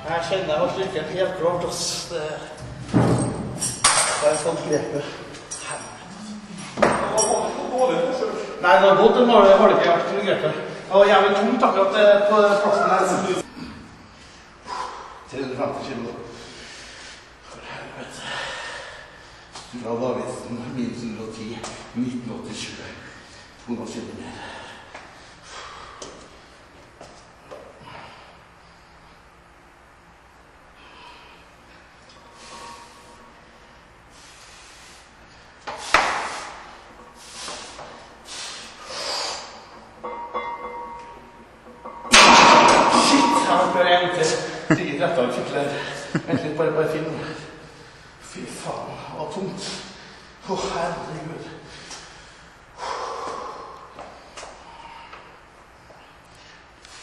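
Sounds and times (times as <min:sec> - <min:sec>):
strained breaths: 0:30.7 - 0:41.9, 0:51.5 - 0:57.0
sharp bracing breaths: 0:34.1 - 0:39.8
barbell clanking off rack pins: 0:40.0 - 0:43.7
man exhaling forcefully: 0:52.8 - 0:53.9.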